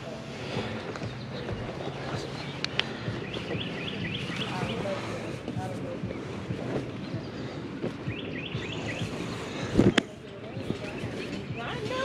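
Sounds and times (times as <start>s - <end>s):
wind on the microphone: 0.0s - 12.0s
clothes rustling: 0.2s - 8.1s
small birds chirping: 0.4s - 12.0s.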